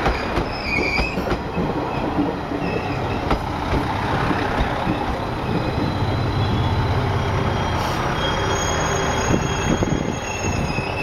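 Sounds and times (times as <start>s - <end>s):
train knocks: 0.0s - 8.2s
diesel train rolling past: 0.0s - 11.0s
wheels squealing: 4.6s - 11.0s.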